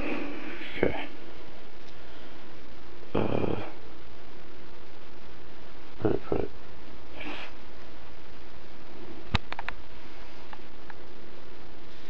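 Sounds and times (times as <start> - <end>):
steady background hum: 0.0 - 12.0
short vocal sound: 3.1 - 3.8.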